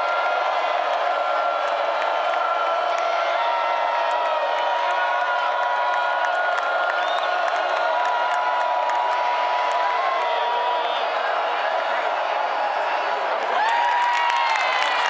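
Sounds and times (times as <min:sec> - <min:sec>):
crowd din of voices: 0:00.0 - 0:15.0
fans yelling and whooping: 0:00.0 - 0:15.0.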